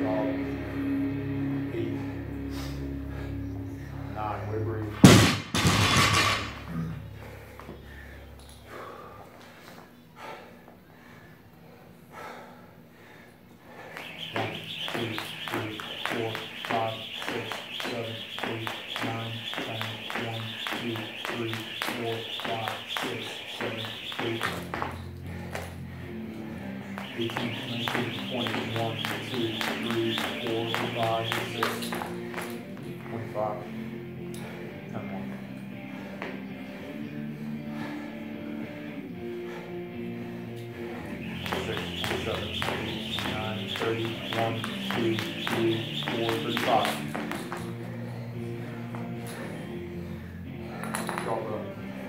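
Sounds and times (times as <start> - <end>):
background music: 0.0 - 5.1, 23.8 - 52.0
barbell crashing on floor: 5.0 - 6.6
jump rope slapping floor: 13.9 - 25.8, 26.9 - 32.7, 41.3 - 47.8.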